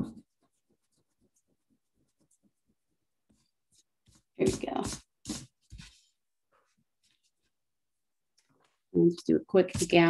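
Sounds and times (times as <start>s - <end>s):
eraser rubbing on paper: 3.7s - 6.1s.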